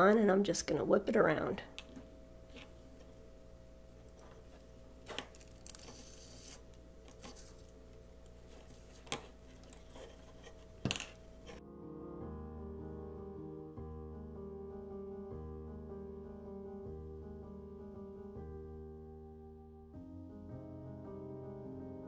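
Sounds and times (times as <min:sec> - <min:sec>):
low steady hum: 0:00.0 - 0:11.6
piano background music: 0:10.0 - 0:22.0.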